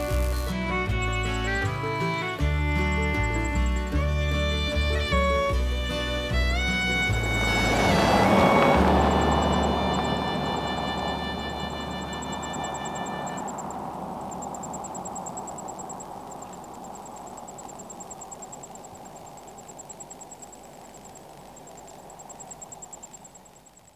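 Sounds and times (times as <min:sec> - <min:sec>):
background music: 0:00.0 - 0:13.4
faint high pulsing chirp: 0:00.0 - 0:23.9
car passing by: 0:05.9 - 0:17.8.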